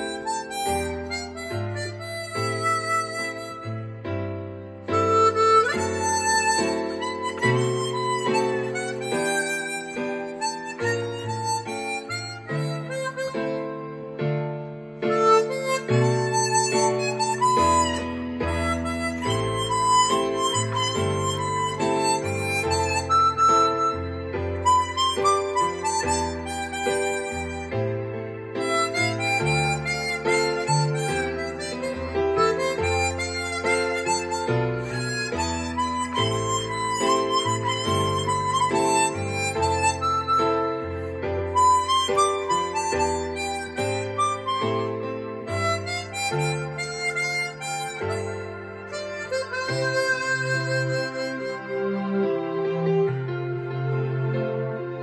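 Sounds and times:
harmonica melody: 0.0 - 55.0
backing chords and bass: 29.1 - 52.2.

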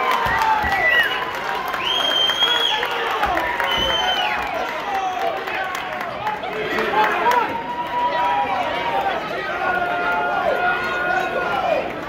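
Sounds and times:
crowd talking and calling: 0.0 - 12.0.

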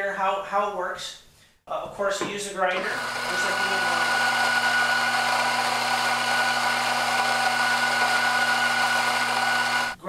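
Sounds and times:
coffee grinder motor grinding: 2.7 - 10.0.

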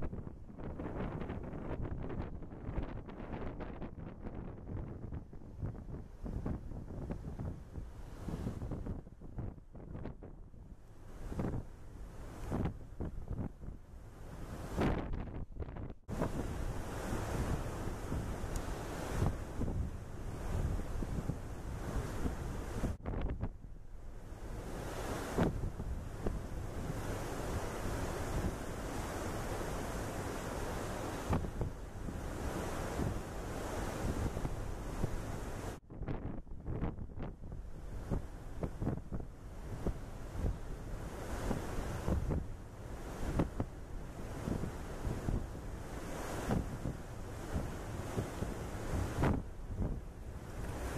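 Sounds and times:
ocean noise: 0.0 - 50.9
wind buffeting microphone: 0.0 - 50.9.

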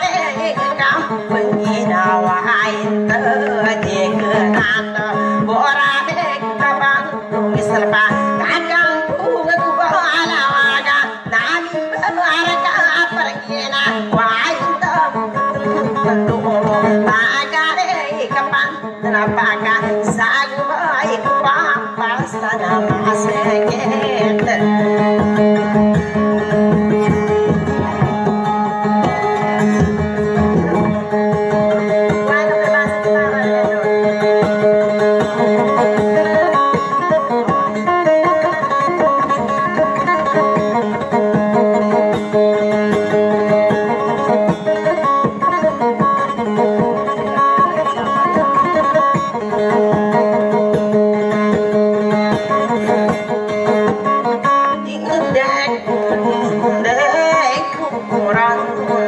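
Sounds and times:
amplified plucked-string music: 0.0 - 59.0.

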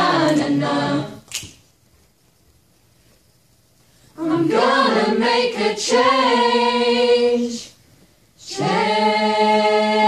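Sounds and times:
a cappella choir singing: 0.0 - 1.3, 4.2 - 7.8, 8.4 - 10.0
sharp snap: 1.2 - 1.6.

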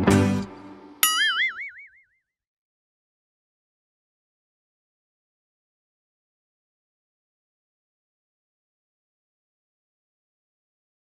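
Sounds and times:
plucked guitar jingle: 0.0 - 1.8
cartoon boing: 1.0 - 2.2.

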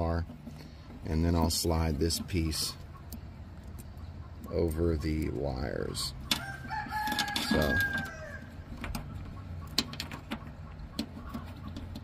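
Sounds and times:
birds and chickens: 0.3 - 12.0
rooster crowing: 6.3 - 8.6.

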